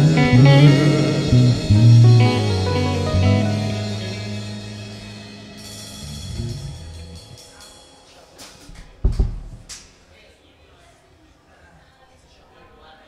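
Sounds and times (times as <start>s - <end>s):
guitar and bass notes: 0.0s - 7.4s
cymbal hits: 0.0s - 8.2s
bass drum thump: 9.0s - 9.7s.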